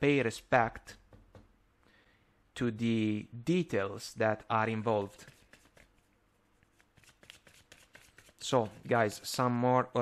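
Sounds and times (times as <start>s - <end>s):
cards shuffling: 6.7s - 9.0s.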